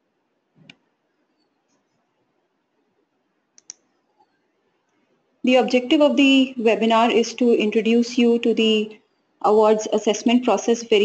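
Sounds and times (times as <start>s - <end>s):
computer clicks: 3.5s - 3.9s.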